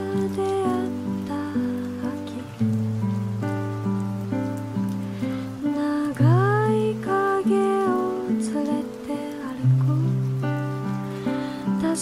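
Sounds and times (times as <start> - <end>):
fingerpicked guitar: 0.0 - 12.0.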